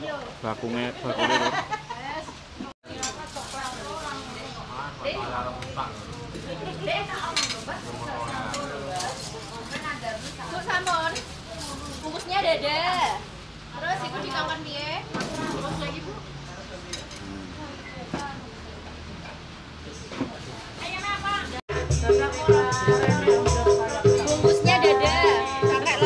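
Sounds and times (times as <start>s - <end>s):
people talking: 1.0s - 13.2s, 20.1s - 26.0s
plastic bags rustling: 2.9s - 4.6s, 7.0s - 13.3s.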